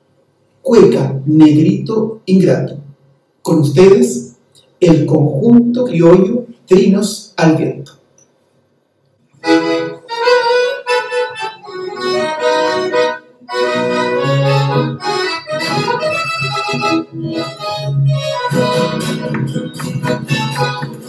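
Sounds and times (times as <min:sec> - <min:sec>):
piano accordion melody: 0:09.4 - 0:21.0.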